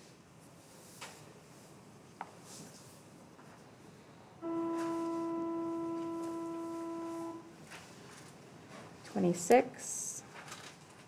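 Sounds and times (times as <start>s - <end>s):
steady pitched tone: 4.4s - 7.7s.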